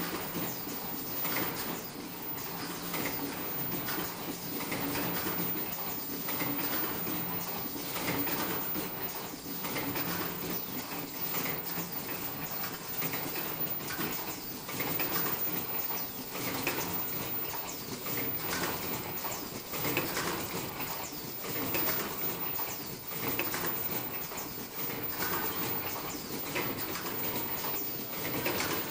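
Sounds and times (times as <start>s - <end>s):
production line mechanical din: 0.0s - 28.9s.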